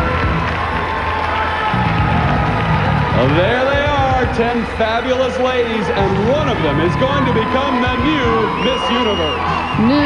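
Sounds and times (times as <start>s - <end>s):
audience cheering and shouting: 0.0s - 10.0s
band music: 1.7s - 10.0s.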